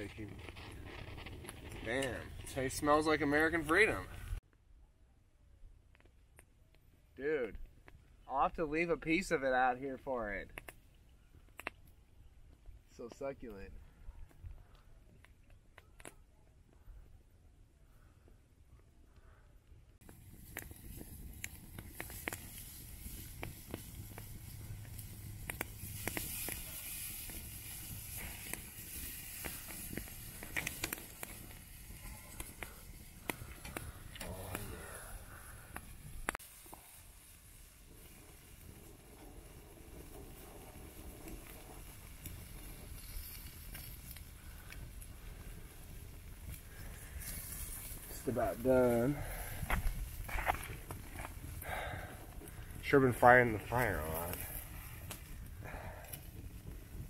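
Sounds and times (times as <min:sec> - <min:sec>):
low outdoor rumble: 0:19.2 - 0:57.0.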